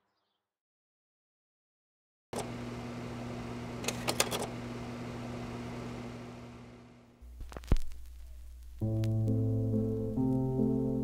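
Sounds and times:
steady low hum: 0:02.4 - 0:10.2
music with hummed voice: 0:07.2 - 0:11.0.

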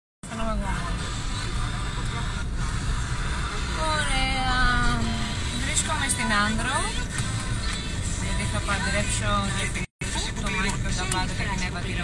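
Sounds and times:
car engine and road noise: 0:00.2 - 0:12.0.

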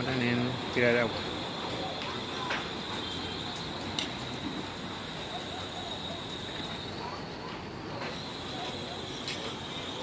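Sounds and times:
faint high whine: 0:00.0 - 0:10.0
outdoor background noise: 0:00.0 - 0:10.0.

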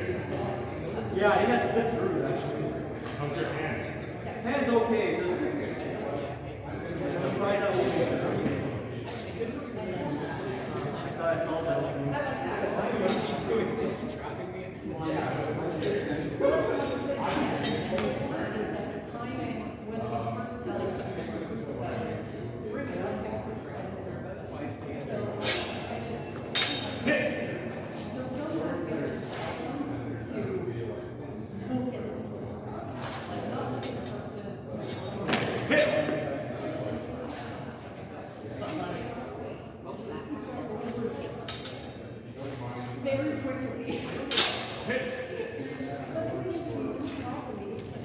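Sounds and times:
sword blades clashing: 0:25.4 - 0:25.9, 0:44.3 - 0:44.9.

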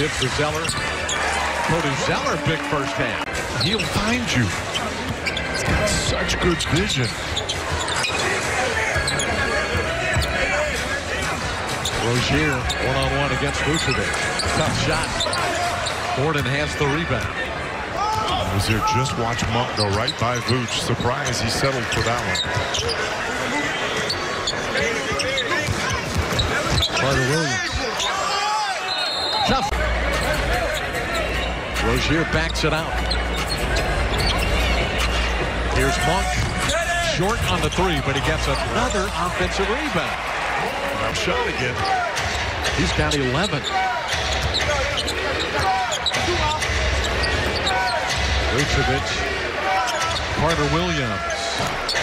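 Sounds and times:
arena crowd noise: 0:00.0 - 0:52.0.

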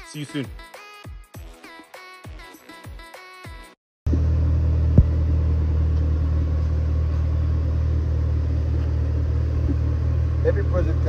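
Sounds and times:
music: 0:00.0 - 0:03.8
car engine idling: 0:04.1 - 0:11.0.

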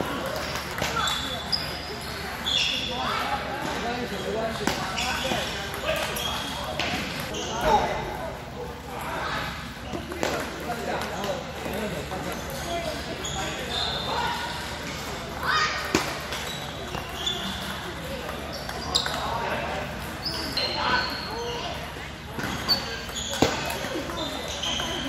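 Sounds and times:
murmur of voices: 0:00.0 - 0:25.0.

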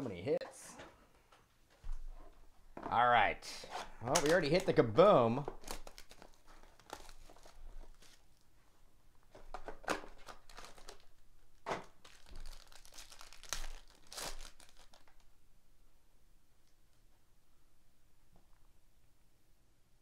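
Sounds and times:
plastic and foil crinkling: 0:03.8 - 0:08.6, 0:09.3 - 0:15.3.

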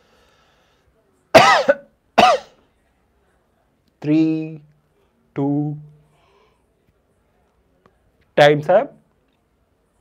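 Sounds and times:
man coughing: 0:01.4 - 0:02.6.

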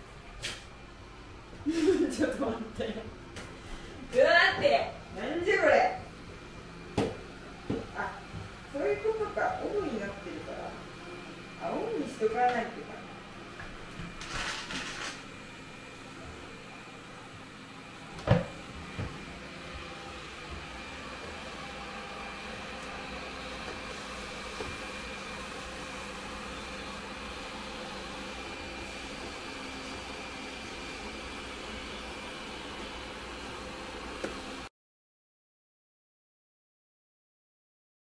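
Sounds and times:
robot vacuum cleaner whirring: 0:05.8 - 0:34.7.

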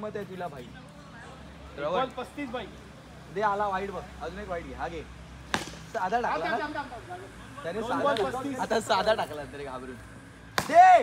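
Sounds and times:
cricket bat striking ball: 0:05.5 - 0:06.0, 0:10.5 - 0:10.8
loud shout: 0:10.7 - 0:11.0.

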